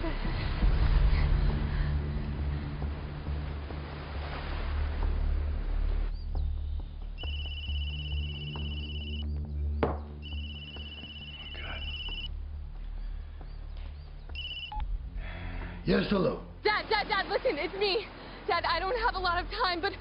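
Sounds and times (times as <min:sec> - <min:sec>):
phone ringing: 0:07.2 - 0:09.2, 0:10.2 - 0:12.3, 0:14.4 - 0:14.8.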